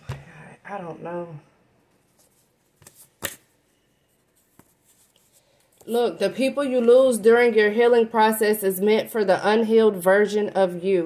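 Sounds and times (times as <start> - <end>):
paper cards rustling: 2.0 - 3.5, 4.2 - 6.0
card snapping: 2.8 - 3.5.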